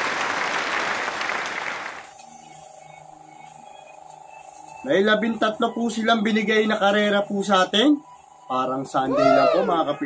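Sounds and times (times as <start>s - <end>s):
applause: 0.0s - 2.1s.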